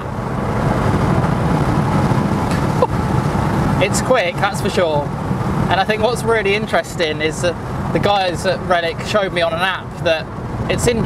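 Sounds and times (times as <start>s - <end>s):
road and tyre rumble: 0.0s - 11.0s.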